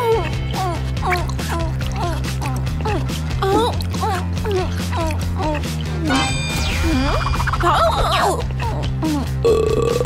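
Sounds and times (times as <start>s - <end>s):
background music: 0.0s - 10.0s
long cartoon burp: 9.4s - 10.0s.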